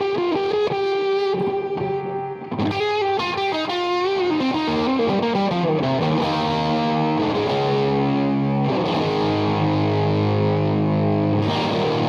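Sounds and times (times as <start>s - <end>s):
distorted electric guitar lead: 0.0s - 12.0s.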